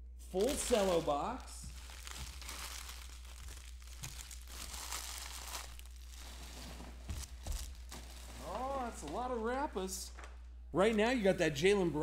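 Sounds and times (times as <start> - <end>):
cellophane crinkling and tearing: 0.4 - 8.8.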